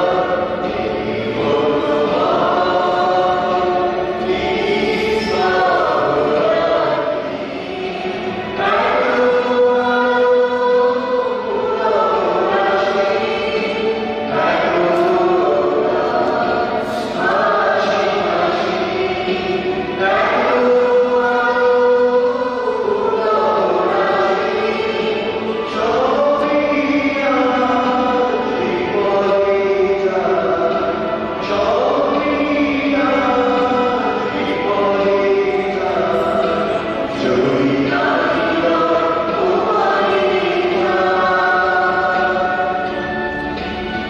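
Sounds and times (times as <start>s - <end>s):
church choir singing a hymn: 0.0s - 44.0s.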